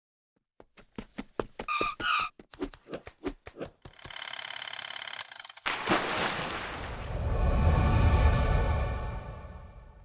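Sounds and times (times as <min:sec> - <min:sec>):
rapid buzzing rattle: 0:03.9 - 0:05.6
whoosh-like swell: 0:07.1 - 0:10.0.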